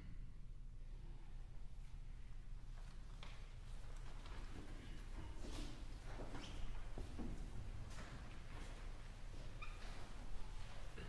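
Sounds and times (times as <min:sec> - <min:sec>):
low hum of hall: 0:00.0 - 0:11.0.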